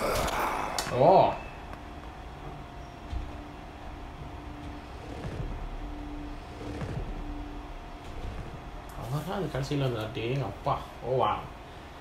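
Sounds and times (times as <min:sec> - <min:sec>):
low rumbling drone: 0:00.0 - 0:12.0
steady high hum: 0:00.0 - 0:12.0.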